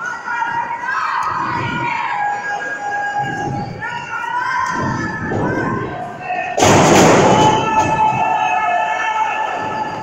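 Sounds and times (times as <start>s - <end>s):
crowd shouting and cheering: 0.0s - 10.0s.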